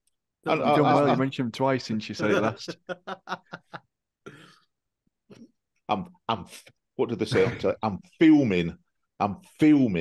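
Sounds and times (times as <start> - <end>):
person speaking: 0.5 - 3.8
person laughing: 2.2 - 3.8.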